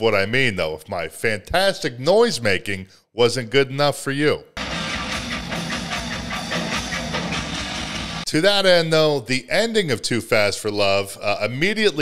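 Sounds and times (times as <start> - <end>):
palm-muted electric guitar chugging: 4.6 - 8.2
live rock band playing: 4.6 - 8.3.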